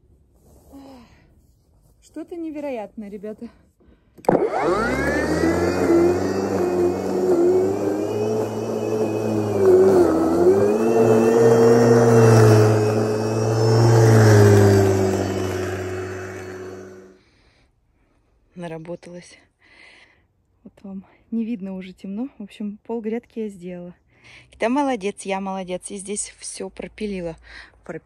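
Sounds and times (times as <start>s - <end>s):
electric lawn mower whining: 4.2s - 17.1s.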